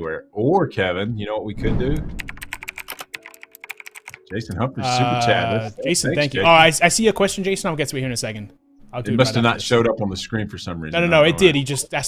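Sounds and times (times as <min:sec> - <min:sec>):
keyboard typing clicks: 0:02.2 - 0:04.3.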